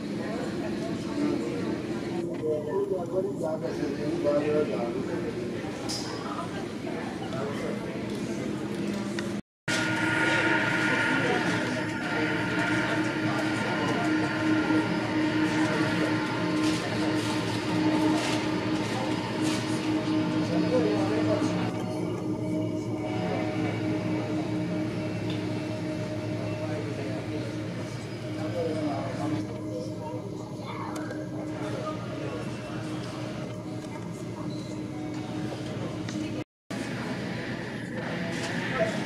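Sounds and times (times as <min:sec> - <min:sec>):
jet engines rumbling: 0:09.7 - 0:36.3.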